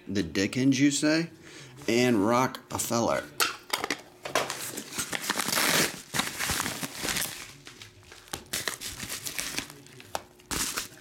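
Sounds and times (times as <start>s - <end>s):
plastic wrapping crinkling: 4.4s - 11.0s.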